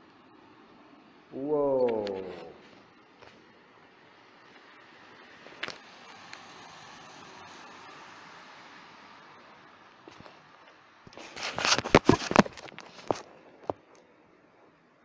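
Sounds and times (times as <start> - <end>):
steady low hiss: 0.0 - 15.0.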